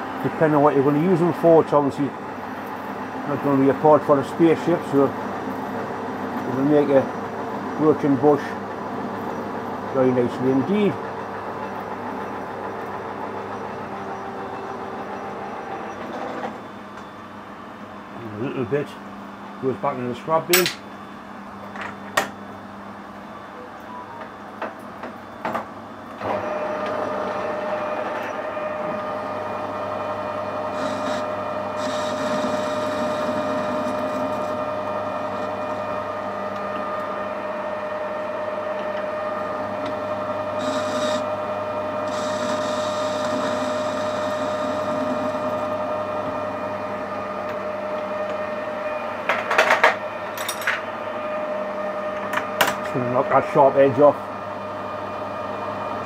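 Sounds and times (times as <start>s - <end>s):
metal lathe whining: 26.2s - 49.3s
lathe tool cutting metal: 26.3s - 48.8s.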